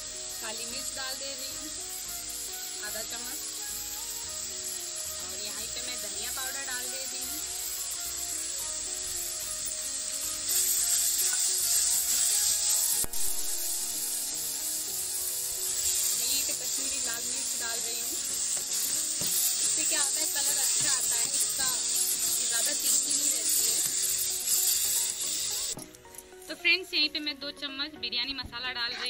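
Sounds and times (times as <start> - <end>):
masala sizzling in hot oil: 0.0 - 27.2
metal spatula stirring: 10.5 - 14.4, 15.5 - 25.8.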